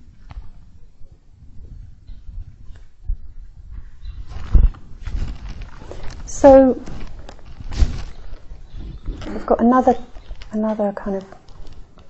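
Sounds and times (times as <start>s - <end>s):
rustling: 3.7s - 12.0s.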